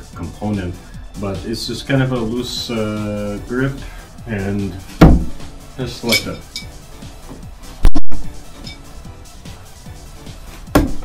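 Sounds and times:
background music: 0.0s - 11.0s
knife striking wooden target: 10.7s - 11.0s.

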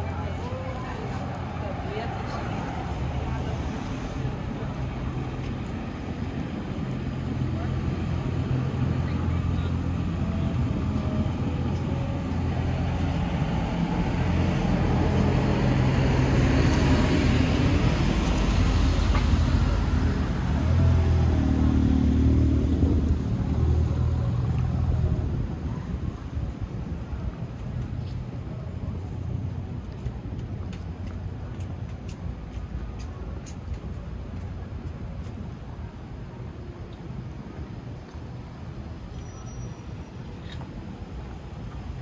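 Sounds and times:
vehicle passing: 0.0s - 25.2s.

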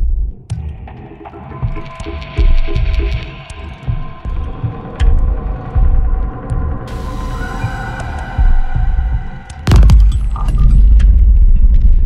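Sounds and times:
low throbbing rumble: 1.6s - 12.0s
sudden loud hit: 8.4s - 10.7s.

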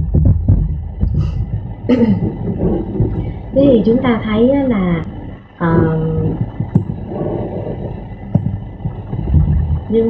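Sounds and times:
noisy video call background: 0.0s - 10.0s.

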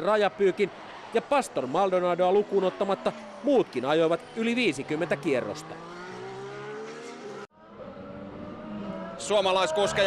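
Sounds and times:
racing car engines: 0.0s - 10.0s.

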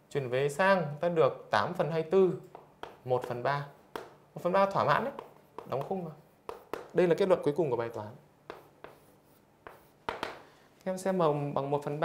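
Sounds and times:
chalk tapping on blackboard: 2.4s - 7.4s, 8.4s - 10.5s.

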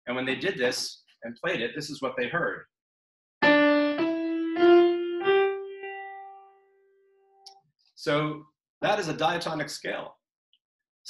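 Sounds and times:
piano rising notes: 3.4s - 6.9s.

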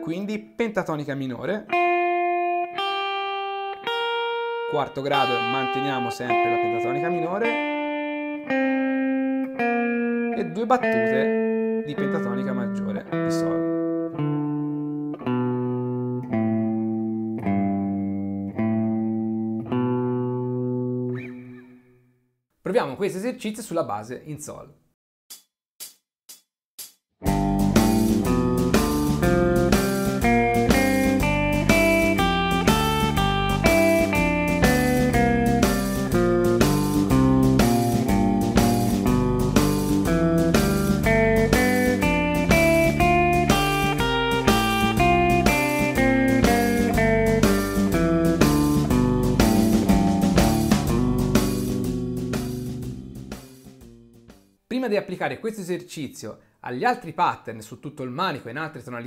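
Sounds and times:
guitar playing scales: 0.0s - 0.5s, 1.7s - 22.0s, 27.2s - 54.2s
blues backing track with drums: 27.2s - 54.4s.

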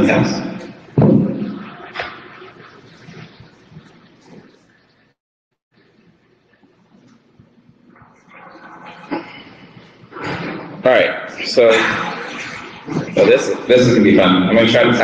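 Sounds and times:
meeting room noise: 0.0s - 15.0s.

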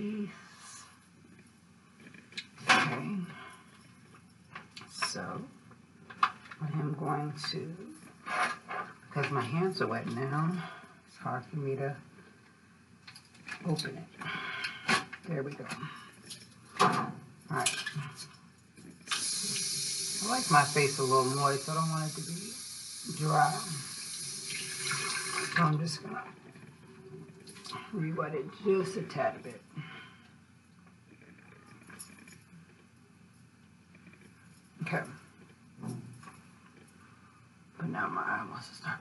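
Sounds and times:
faint low hum: 0.0s - 39.0s
sink tap water running: 19.1s - 25.7s.

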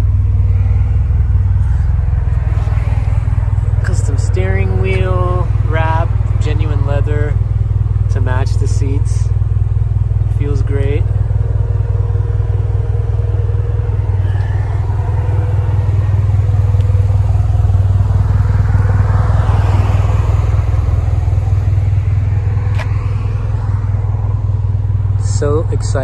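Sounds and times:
car engine idling: 0.0s - 26.0s
passing car: 0.0s - 26.0s.

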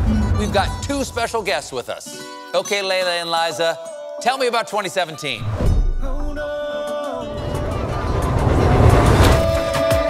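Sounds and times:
rising whoosh: 7.2s - 9.9s
low rumble: 7.3s - 9.7s.

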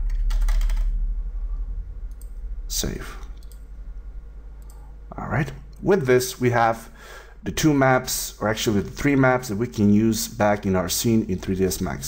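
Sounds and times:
keyboard typing: 0.0s - 0.9s
steady low hum: 0.0s - 12.0s.

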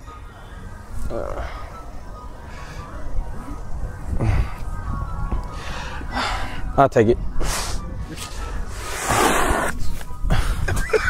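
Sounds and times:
wind rumble on microphone: 3.1s - 11.0s.

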